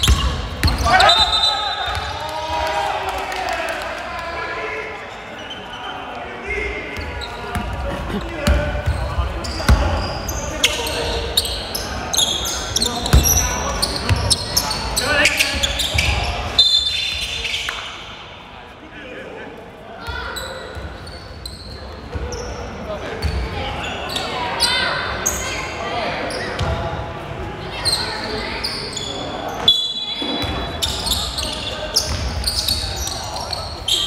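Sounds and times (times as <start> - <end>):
players' voices echoing: 0.0 - 34.0.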